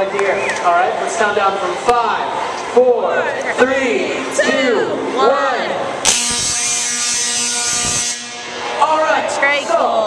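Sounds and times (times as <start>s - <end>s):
tesla coil spark buzz: 6.0s - 8.8s.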